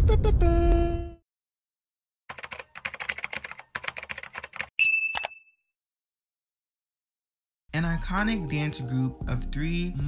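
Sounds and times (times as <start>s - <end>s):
typing clicks: 2.3s - 5.4s
bright bell ding: 4.8s - 5.6s.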